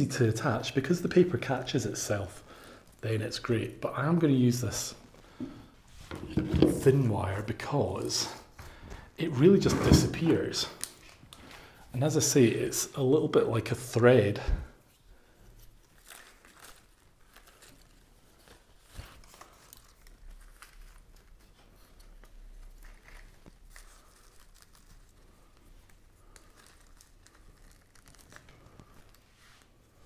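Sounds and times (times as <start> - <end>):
rustling and crinkling of moss: 15.5 - 30.0.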